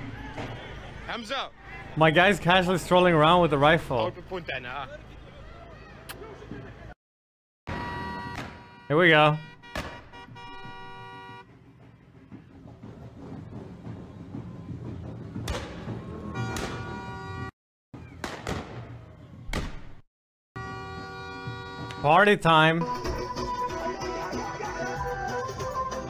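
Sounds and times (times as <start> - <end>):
crowd noise: 0.0 - 7.0, 7.8 - 17.4
sharp bangs: 7.7 - 11.3, 15.3 - 17.2, 18.0 - 20.0.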